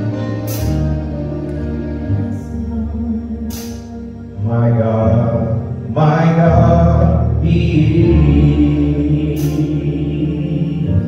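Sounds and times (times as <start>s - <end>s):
gospel group singing: 0.0s - 11.0s
low instrumental accompaniment: 0.0s - 11.0s.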